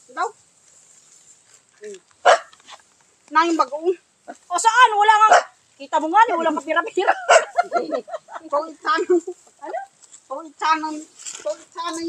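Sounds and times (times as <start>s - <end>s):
dog barking: 2.2s - 2.6s, 5.3s - 5.6s, 7.1s - 7.7s.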